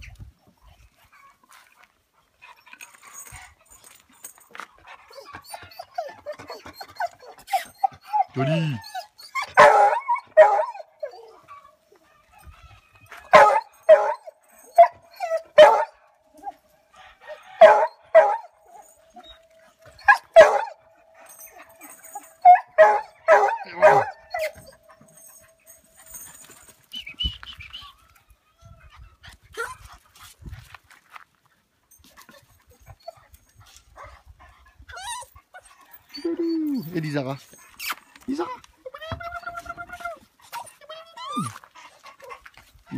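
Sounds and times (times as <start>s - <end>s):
dogs barking: 9.5s - 10.9s, 13.3s - 16.0s, 17.3s - 19.0s, 20.0s - 25.6s
dog howling: 20.2s - 25.4s.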